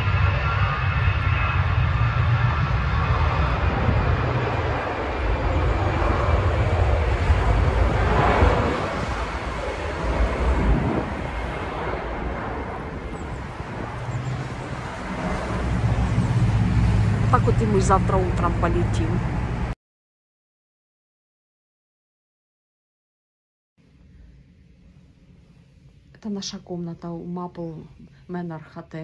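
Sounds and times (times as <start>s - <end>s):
airliner engine roar: 0.0s - 19.8s.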